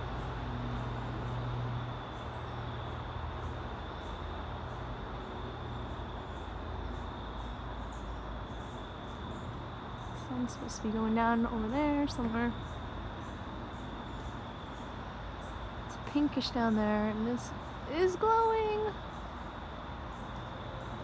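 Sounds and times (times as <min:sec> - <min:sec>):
distant traffic hum: 0:00.0 - 0:21.0
insects droning: 0:00.0 - 0:21.0.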